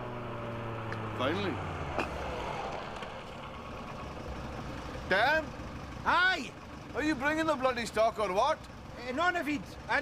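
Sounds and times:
van engine idling: 0.1 - 10.0.

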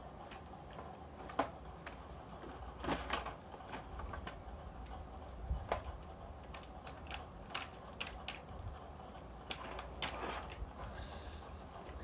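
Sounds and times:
keyboard keys clicking: 6.4 - 8.6.

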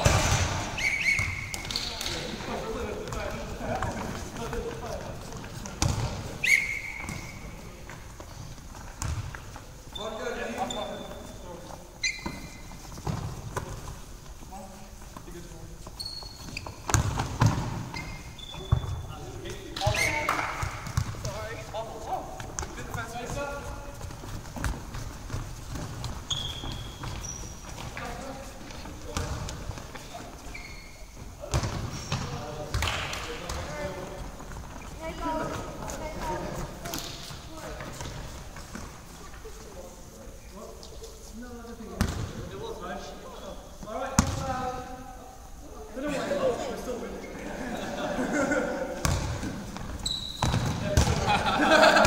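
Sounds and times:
trainers squeaking: 0.7 - 2.0, 15.9 - 16.9, 30.0 - 31.1
ball bouncing on wooden floor: 5.6 - 6.2.

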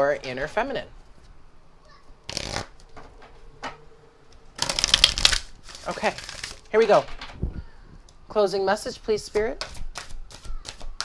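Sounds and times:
cards shuffling: 2.3 - 3.0, 4.6 - 7.1, 9.3 - 11.0
cards rustling: 4.6 - 7.1.

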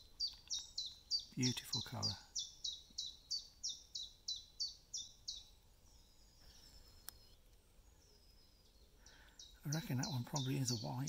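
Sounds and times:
songbird singing high notes: 0.0 - 11.0
faint click: 7.0 - 7.6.

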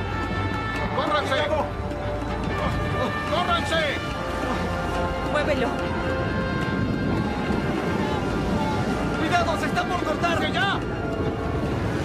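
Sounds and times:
rough water: 0.0 - 12.0
wind: 0.0 - 12.0
faint shouting voices: 5.3 - 11.4.

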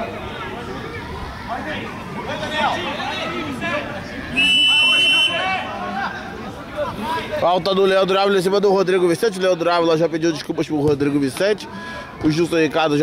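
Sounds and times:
referee's whistle blast: 4.3 - 5.5.

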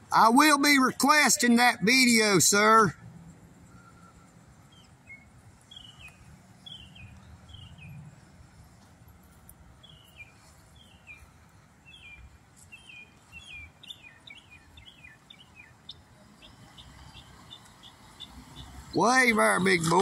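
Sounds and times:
songbird chirping: 0.0 - 20.0.

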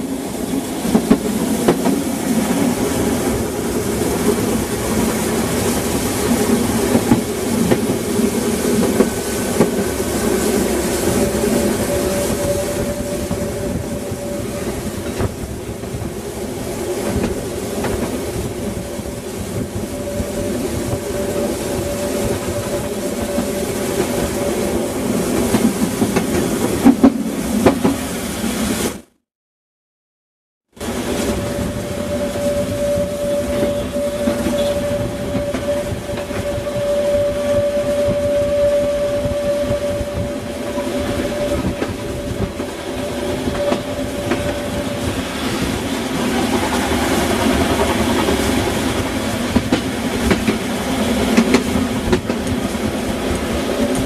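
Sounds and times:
rail clicks: 0.0 - 29.0, 30.8 - 54.0
steam train rolling rumble: 0.0 - 29.1, 30.7 - 54.0.

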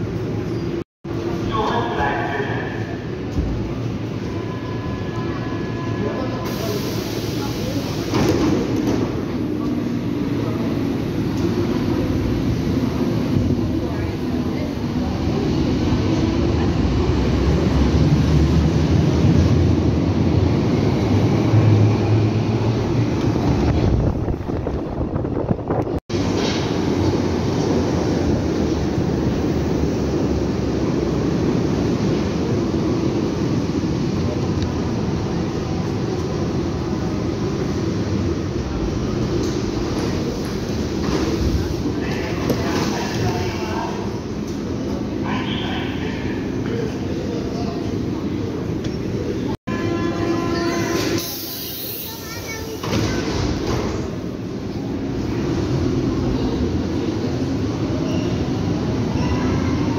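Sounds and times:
subway train rumbling: 0.0 - 59.9
voices on platform: 1.3 - 17.3, 38.7 - 51.2.

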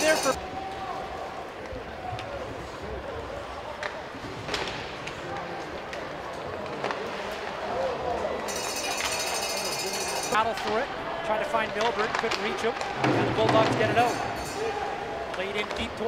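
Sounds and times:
hockey stick or puck clacks: 11.6 - 14.2.

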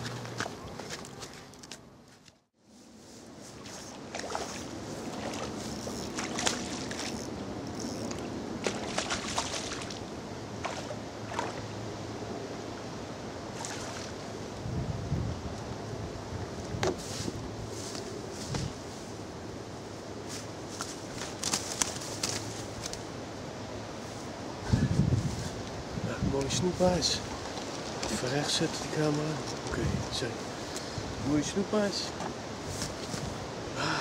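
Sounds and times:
hiss of wind and water: 2.6 - 34.0.

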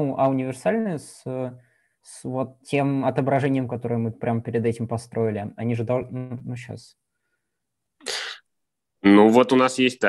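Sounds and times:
person breathing out: 8.0 - 8.4.

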